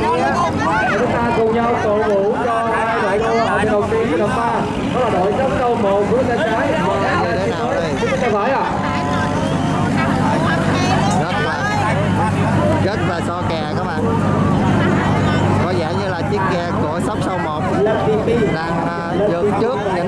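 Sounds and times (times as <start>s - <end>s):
voices talking and calling: 0.0s - 20.0s
low hum: 7.6s - 19.1s.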